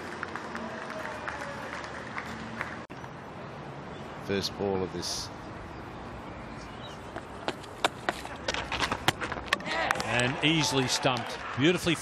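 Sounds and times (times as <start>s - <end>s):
ground background noise: 2.0s - 12.0s.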